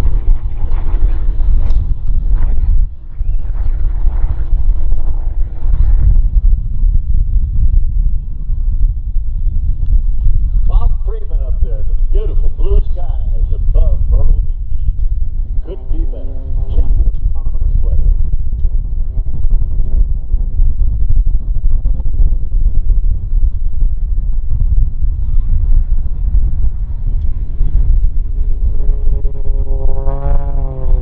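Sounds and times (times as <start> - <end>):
distant plane engine drone: 0.0 - 31.0
wind buffeting microphone: 0.0 - 31.0.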